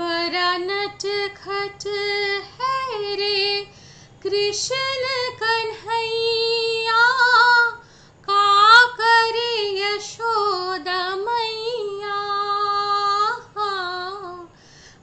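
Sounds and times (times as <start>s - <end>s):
woman singing unaccompanied: 0.0s - 15.0s.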